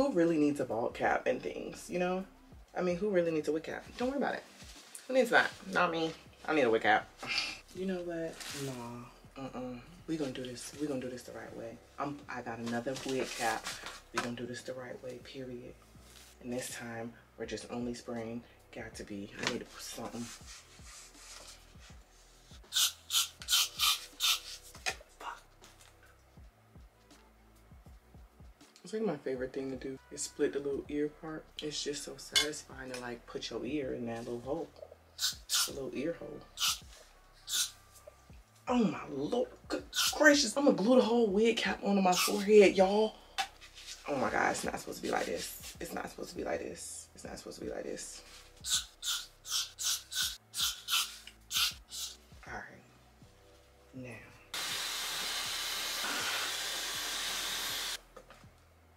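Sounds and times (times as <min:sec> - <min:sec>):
hairspray aerosol hissing bursts: 0:22.7 - 0:24.5, 0:49.0 - 0:52.2, 0:54.6 - 0:58.0.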